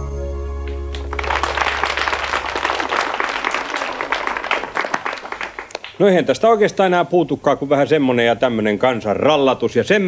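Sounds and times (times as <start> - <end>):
children applauding: 0.6 - 6.0.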